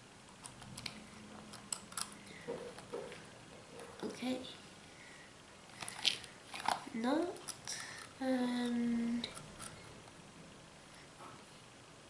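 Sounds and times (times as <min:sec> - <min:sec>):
small metal parts clicking: 0:01.5 - 0:02.2
person humming wordless vocals: 0:08.2 - 0:09.3.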